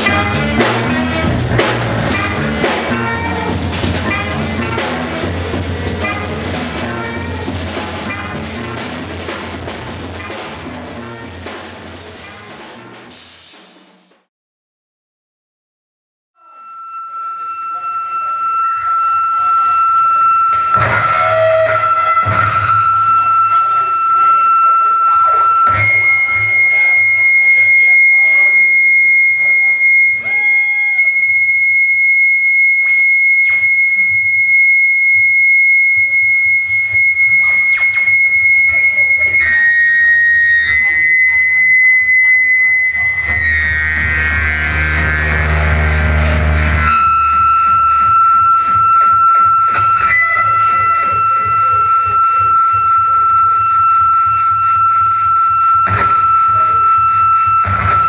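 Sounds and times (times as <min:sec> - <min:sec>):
piercing high electronic tone: 0:00.0 - 0:11.6, 0:16.4 - 0:58.0
distorted low rumble: 0:43.2 - 0:48.4.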